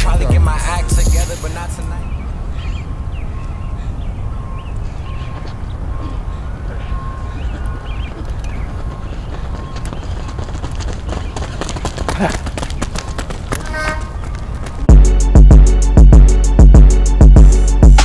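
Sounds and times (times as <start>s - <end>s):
bird chirps: 1.6s - 12.0s
footsteps on rubber track: 4.8s - 14.9s.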